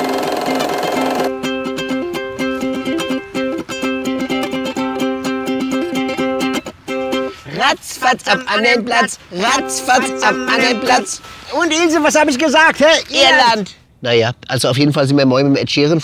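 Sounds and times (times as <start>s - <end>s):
held chord-like tone: 0.0s - 7.4s, 8.2s - 11.9s
ukulele plucked and strummed: 0.0s - 11.2s.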